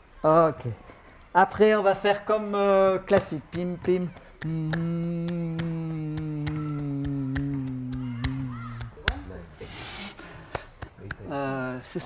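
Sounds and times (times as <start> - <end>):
man humming: 4.4 - 9.4
short hiss: 9.6 - 10.2.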